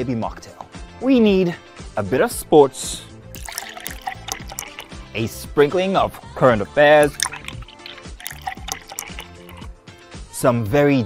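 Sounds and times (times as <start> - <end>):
background music: 0.0 - 11.0
drink pouring into a glass: 3.3 - 5.1, 6.8 - 9.7.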